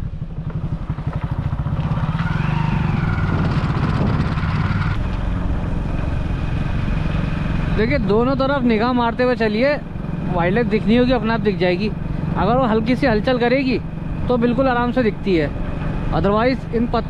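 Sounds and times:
motorcycle engine running: 0.0s - 17.0s.

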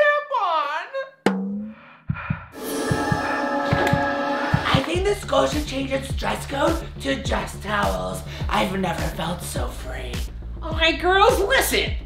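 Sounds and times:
sharp hit with low ring: 2.6s - 5.0s.

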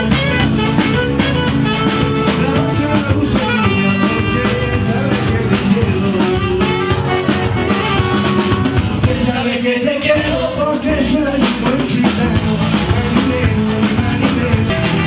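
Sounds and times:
saxophone held notes: 0.0s - 9.1s
acoustic guitars strummed: 0.0s - 15.0s
drum kit: 0.0s - 15.0s.

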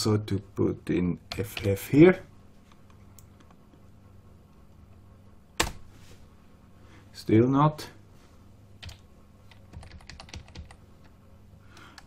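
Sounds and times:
low steady hum: 0.0s - 12.0s
computer keyboard keystroke: 8.8s - 10.8s.

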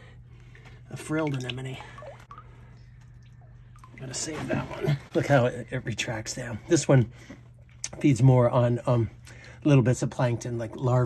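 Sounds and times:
low hum: 0.0s - 7.9s
water drips into water: 1.0s - 4.2s.

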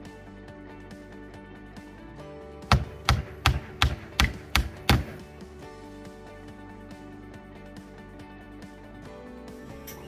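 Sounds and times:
hammer blows: 2.7s - 5.2s.

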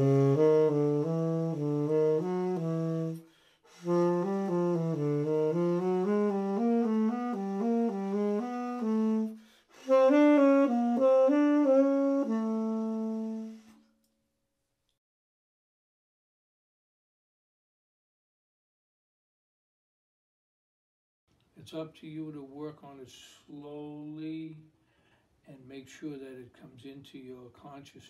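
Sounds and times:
tenor saxophone playing: 0.0s - 13.8s
saxophonist breathing: 3.2s - 4.1s, 9.3s - 10.1s, 24.8s - 25.4s.

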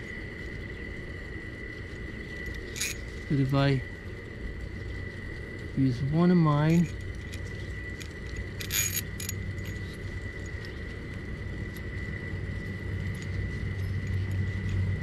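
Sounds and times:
low hum: 0.0s - 15.0s
metal bolt and washers clicking: 2.8s - 3.0s, 8.0s - 9.8s
metal clink: 8.0s - 9.9s.

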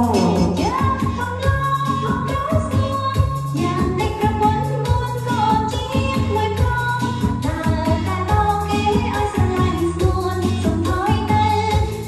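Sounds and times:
pop song with singing and band: 0.0s - 12.0s.

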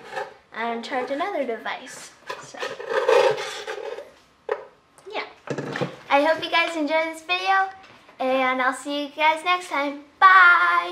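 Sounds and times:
child speaking: 0.5s - 2.7s, 5.0s - 5.4s, 6.1s - 10.9s.

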